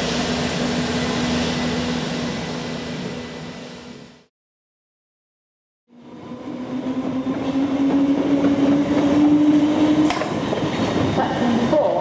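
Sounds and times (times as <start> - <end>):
diesel locomotive engine: 0.0 - 4.3, 5.9 - 12.0
train rumble: 6.0 - 12.0.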